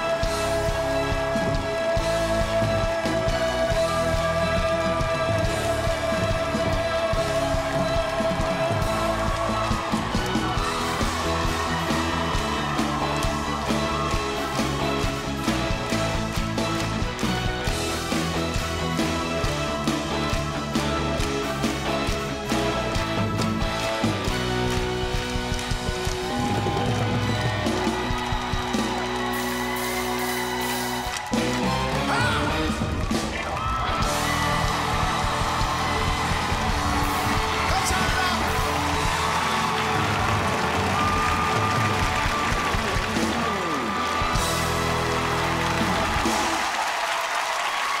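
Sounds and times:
live band playing pop-rock: 0.0s - 46.8s
crowd cheering: 0.0s - 48.0s
crowd clapping: 0.0s - 48.0s.

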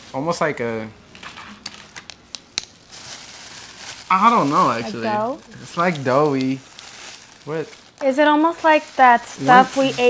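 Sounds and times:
plastic bag crinkling: 1.2s - 10.0s.

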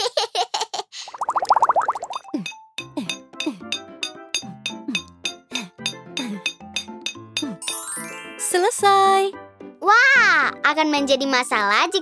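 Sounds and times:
cartoon wobbling burble: 1.2s - 2.3s.

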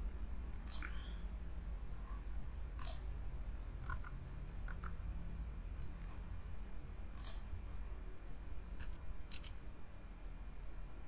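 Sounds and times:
low steady hum: 0.0s - 11.0s
computer mouse clicks: 0.5s - 1.1s, 7.2s - 7.5s, 8.8s - 9.6s.

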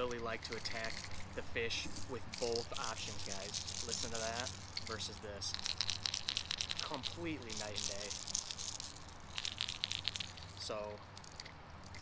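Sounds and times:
fishing lure rattles clicking: 0.0s - 12.0s.

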